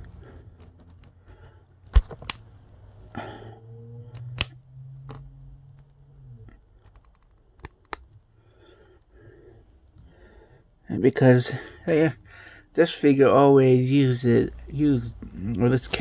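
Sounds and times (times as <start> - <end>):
low steady hum: 0.0 - 16.0
plastic clicks and snaps: 1.9 - 2.5, 4.1 - 8.3.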